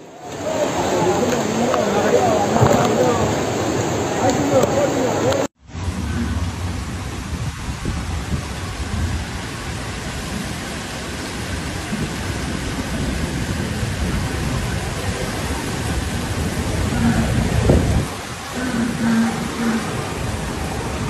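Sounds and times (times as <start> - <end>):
floodwater rushing: 0.0 - 21.0
heavy rain: 0.0 - 21.0
deep low rumble: 5.6 - 10.6.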